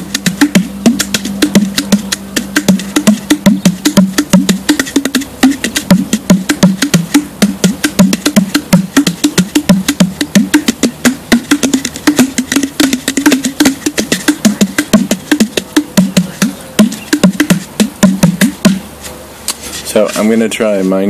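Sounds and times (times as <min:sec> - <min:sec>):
deep hollow bending drum tone: 0:00.0 - 0:18.9.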